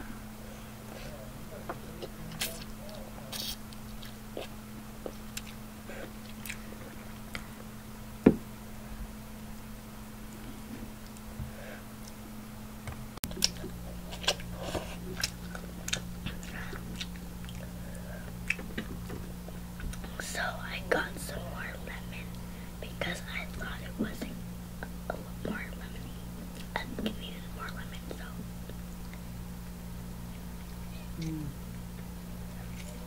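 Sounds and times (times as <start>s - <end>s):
steady low hum: 0.0s - 33.0s
noodles being chewed: 2.0s - 7.5s, 13.3s - 20.1s.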